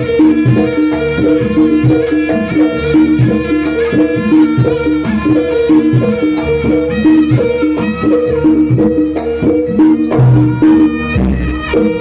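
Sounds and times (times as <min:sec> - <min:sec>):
gamelan ensemble playing: 0:00.0 - 0:12.0
hand drum strokes: 0:00.0 - 0:12.0.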